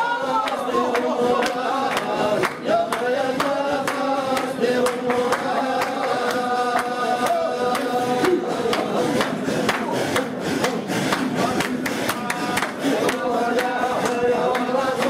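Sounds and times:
men chanting in unison: 0.0s - 15.0s.

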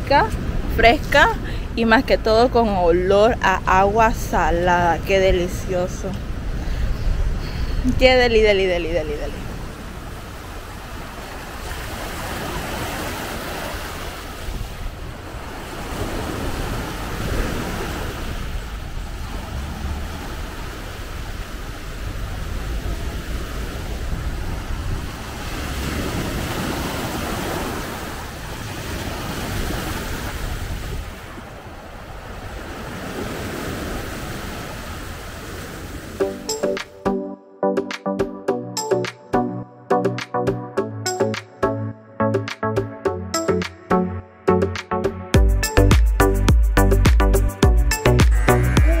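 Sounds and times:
wind on microphone: 0.0s - 36.2s
waves washing on pebbles: 9.5s - 36.2s.

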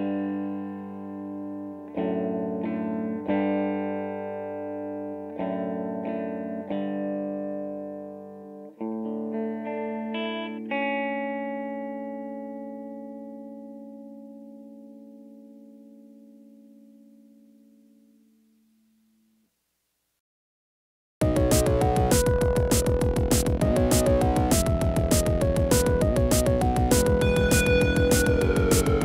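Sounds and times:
guitar chords ringing: 0.0s - 19.2s, 21.2s - 29.0s.

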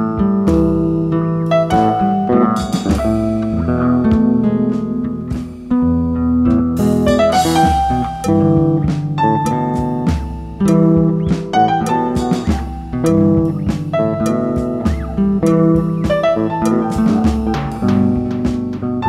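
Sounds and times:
electric bass: 0.0s - 19.0s
guitar: 0.0s - 19.0s
piano: 0.0s - 19.0s.

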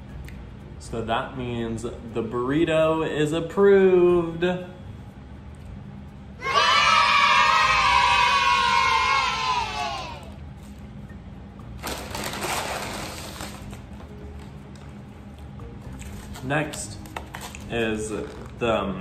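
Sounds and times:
children cheering: 6.4s - 10.4s
paper bag rustling: 11.8s - 14.1s.

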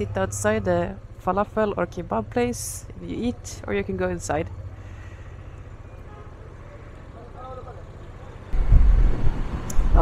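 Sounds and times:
wind buffeting microphone: 8.5s - 10.0s.

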